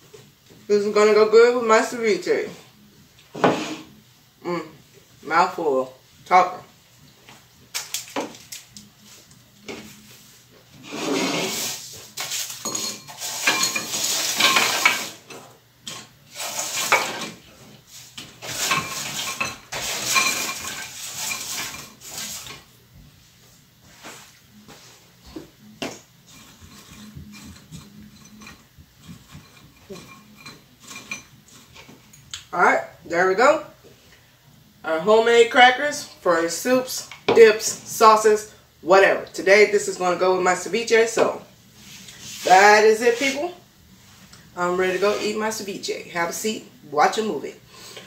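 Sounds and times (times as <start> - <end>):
crackers clattering into a bowl: 7.7 - 8.8, 12.2 - 15.3, 15.9 - 17.4, 18.4 - 22.6.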